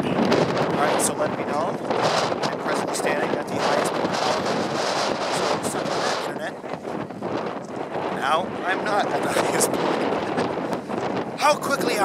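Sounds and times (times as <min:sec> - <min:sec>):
wind buffeting microphone: 0:00.0 - 0:12.0
man's voice: 0:00.8 - 0:01.8, 0:08.2 - 0:10.4, 0:11.4 - 0:12.0.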